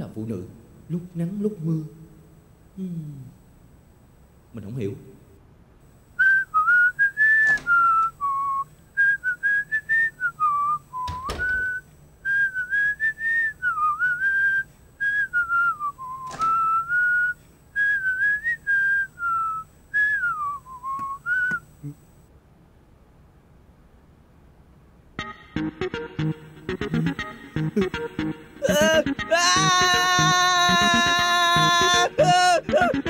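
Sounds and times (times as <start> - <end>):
man whistling a tune: 6.2 - 21.7.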